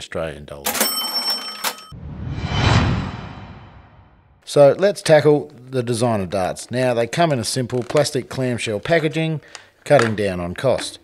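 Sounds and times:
whoosh transition effect: 2.0 - 4.4.

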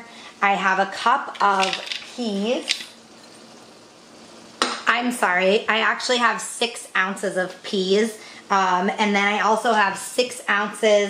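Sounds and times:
woman speaking: 0.0 - 2.9, 4.8 - 11.0
faint room tone hiss: 0.0 - 11.0.

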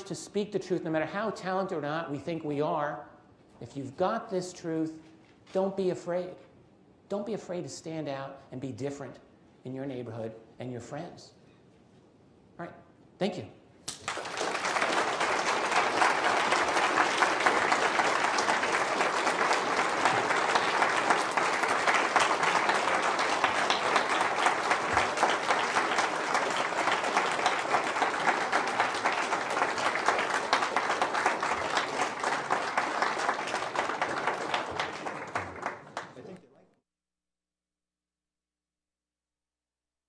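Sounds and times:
audience applause: 13.9 - 36.4.

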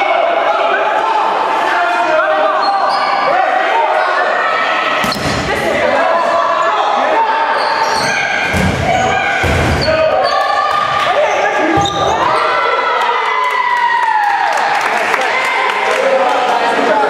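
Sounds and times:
players shouting and cheering: 0.0 - 17.0.

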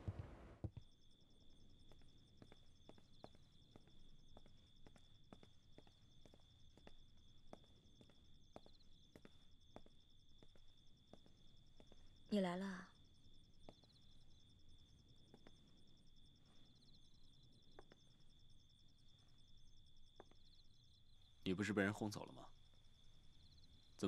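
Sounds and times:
night insects droning: 0.1 - 24.0.

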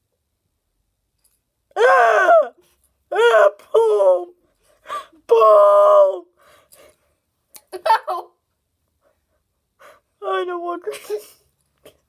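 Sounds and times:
wordless vocal cry: 1.7 - 4.4, 5.2 - 6.3
person gasping: 4.7 - 5.3.

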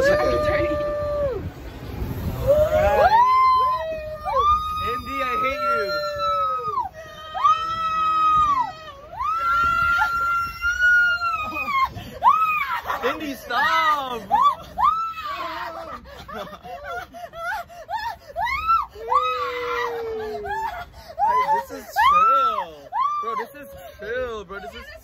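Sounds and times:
people screaming: 0.0 - 25.0
people laughing: 11.4 - 18.7, 19.5 - 25.0.

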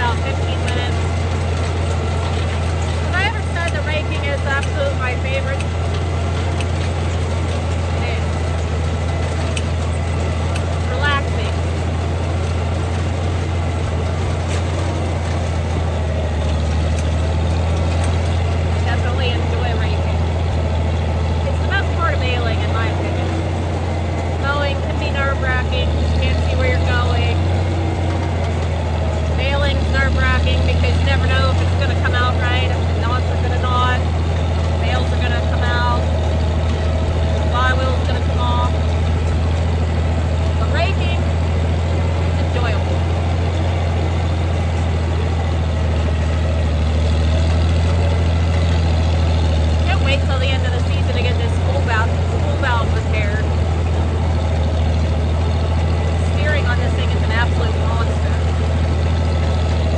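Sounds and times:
tractor engine running: 0.0 - 59.9.

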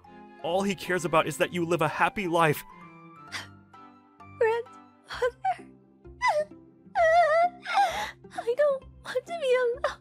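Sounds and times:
soft background music: 0.0 - 10.0
woman wailing and sobbing: 5.1 - 8.2.

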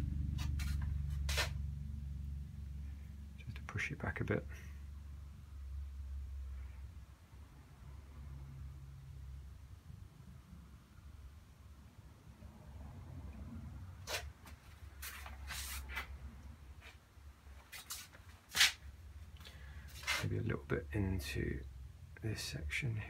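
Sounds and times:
low room hum: 0.0 - 23.0
brush swishes and scrapes: 0.2 - 1.6, 14.0 - 17.0, 17.6 - 18.8, 19.9 - 20.4.

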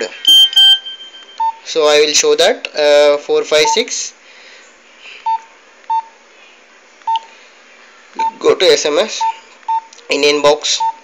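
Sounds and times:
phone keypad beeps: 0.2 - 1.6.

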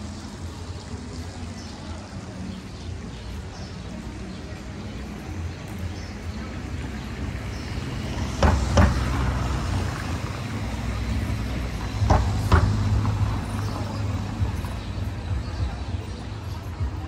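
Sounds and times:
street traffic rumble: 0.0 - 17.0
sharp knocks: 8.4 - 9.1, 12.0 - 13.0.

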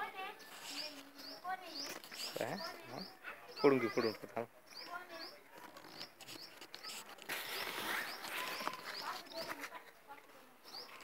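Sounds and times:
leaves rustling against phone: 0.0 - 3.1, 4.8 - 11.0.

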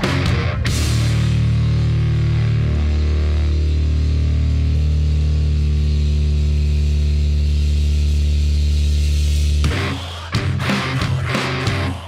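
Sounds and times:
distorted electric guitar drone: 0.0 - 12.0.

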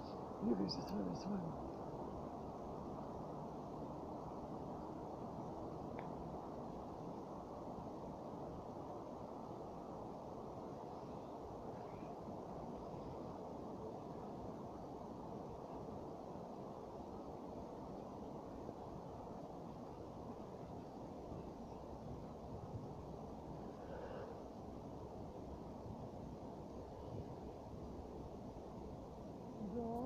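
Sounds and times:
faint low ambient rumble: 0.0 - 30.0.

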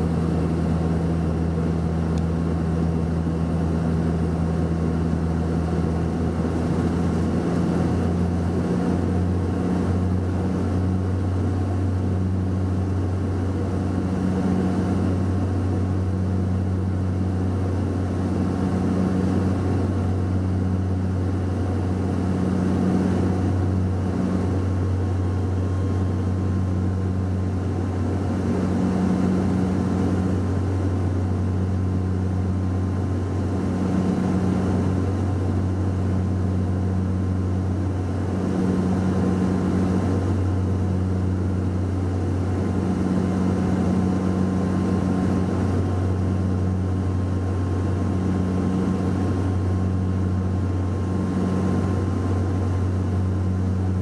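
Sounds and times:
turboprop cabin drone: 0.0 - 54.0.

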